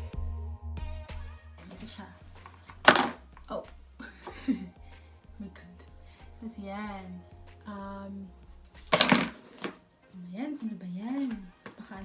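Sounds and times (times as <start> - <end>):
background music: 0.0 - 12.0
loud handling noise: 2.4 - 3.3.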